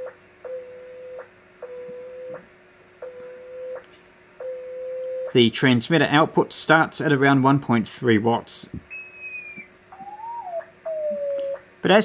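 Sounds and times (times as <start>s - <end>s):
morse code tone chirping: 8.9s - 11.6s.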